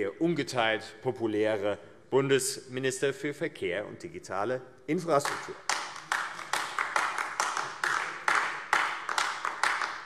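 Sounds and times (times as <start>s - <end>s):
sparse applause: 5.7s - 10.0s.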